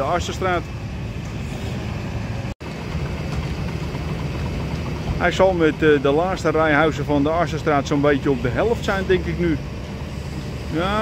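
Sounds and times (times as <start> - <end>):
excavator diesel drone: 0.0 - 11.0.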